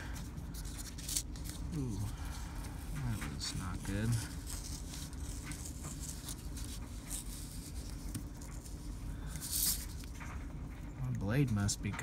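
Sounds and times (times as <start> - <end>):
knife blade scratching through paper: 3.0 - 10.1.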